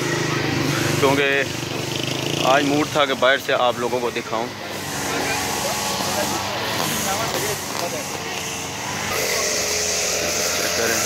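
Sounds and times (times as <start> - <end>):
faint voices: 0.0 - 11.0
traffic noise: 0.0 - 11.0.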